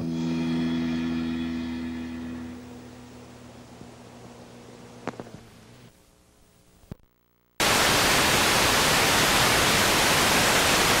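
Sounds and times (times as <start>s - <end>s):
loud static hiss: 0.0s - 11.0s.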